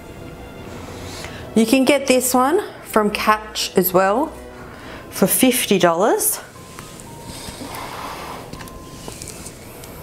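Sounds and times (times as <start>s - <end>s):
person breathing heavily: 4.5s - 5.1s, 6.6s - 8.6s.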